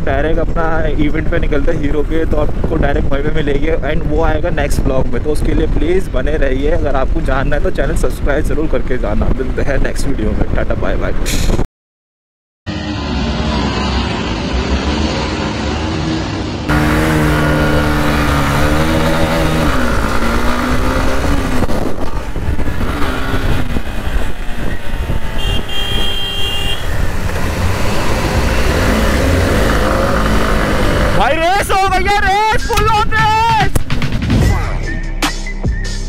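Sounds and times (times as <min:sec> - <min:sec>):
wind rumbling on camera: 0:00.0 - 0:11.6, 0:16.7 - 0:33.9
motorcycle engines revving: 0:12.7 - 0:34.2.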